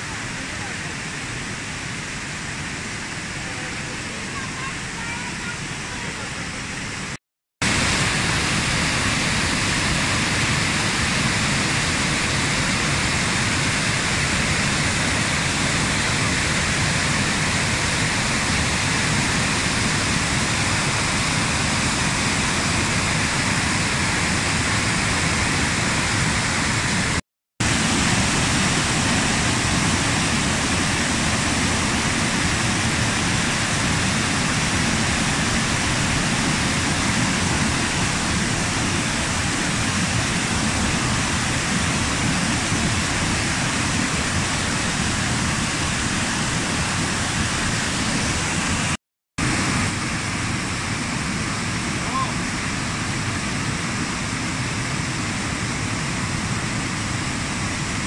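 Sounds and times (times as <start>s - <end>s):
waterfall rushing: 0.0s - 58.0s.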